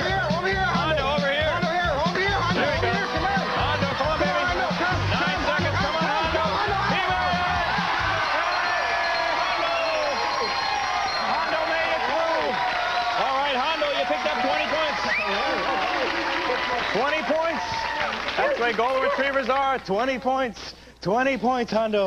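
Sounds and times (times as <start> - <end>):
upbeat game-show music: 0.0 - 17.8
crowd shouting and cheering: 0.0 - 19.6.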